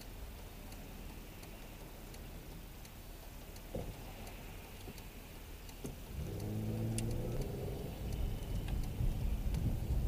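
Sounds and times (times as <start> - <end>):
car engine accelerating: 0.0 - 10.0.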